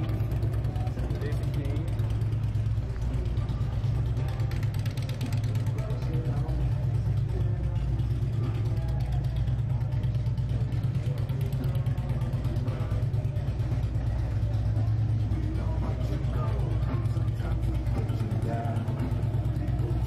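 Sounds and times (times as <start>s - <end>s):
faint voices: 0.0s - 20.0s
road traffic rumble: 0.0s - 20.0s.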